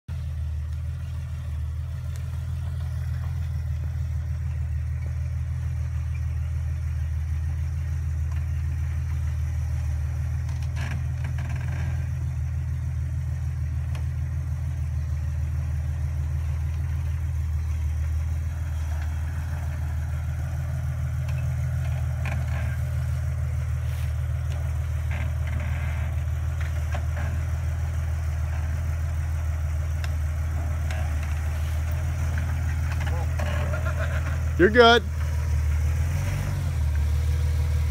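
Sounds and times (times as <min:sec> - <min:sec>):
engine idling: 0:00.0 - 0:37.9.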